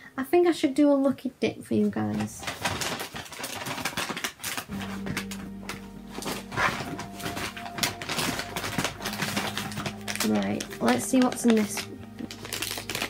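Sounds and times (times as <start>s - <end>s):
soft background music: 0.0s - 2.5s, 3.2s - 13.0s
rummaging in a bag: 1.8s - 13.0s.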